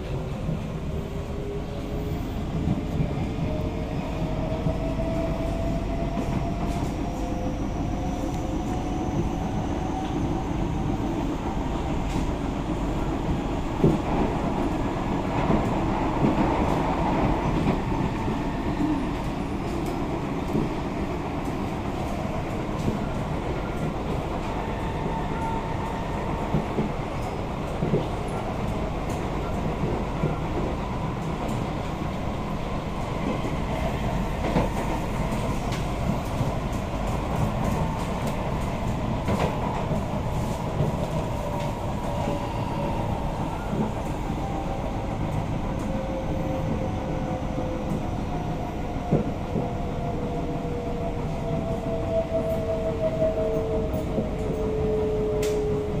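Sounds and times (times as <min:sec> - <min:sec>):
train wheels rumbling on rail: 0:00.0 - 0:56.0.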